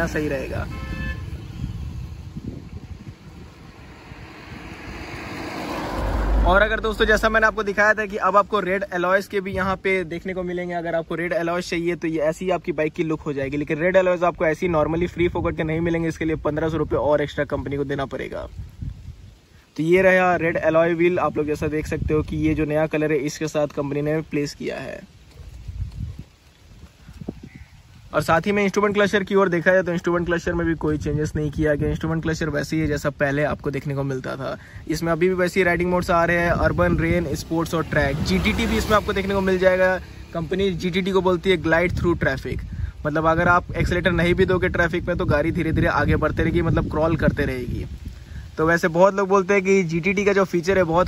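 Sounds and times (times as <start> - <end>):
vehicle passing: 1.2 - 8.2, 36.6 - 41.7
low rumble: 1.3 - 8.3.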